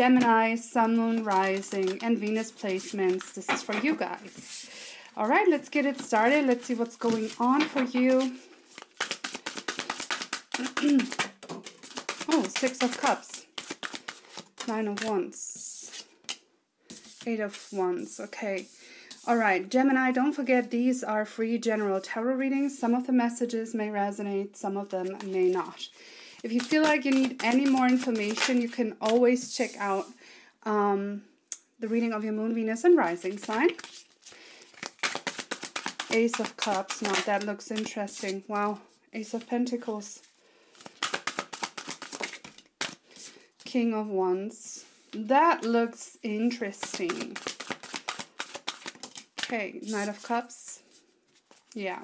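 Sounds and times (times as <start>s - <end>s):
cards being shuffled: 0.0s - 4.5s, 5.2s - 15.2s, 15.8s - 17.8s, 25.0s - 25.8s, 26.4s - 29.9s, 33.1s - 38.4s, 40.7s - 43.3s, 46.6s - 50.4s, 51.3s - 51.8s.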